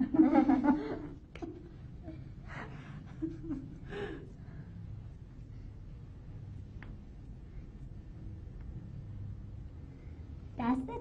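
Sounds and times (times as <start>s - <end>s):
women laughing softly: 0.0s - 4.5s
low steady room hum: 0.0s - 11.0s.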